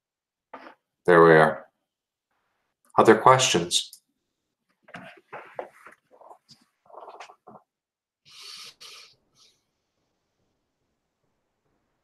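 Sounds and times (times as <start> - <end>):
breathy hissing burst: 8.3 - 9.1.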